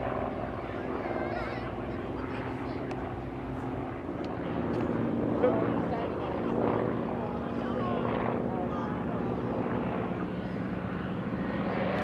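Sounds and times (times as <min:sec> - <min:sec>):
propeller plane engine passing overhead: 0:00.0 - 0:12.0.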